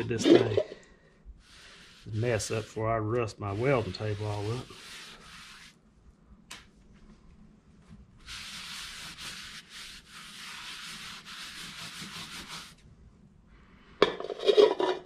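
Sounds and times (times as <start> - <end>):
rag scrubbing wet metal table: 1.4 - 5.8, 8.2 - 12.8.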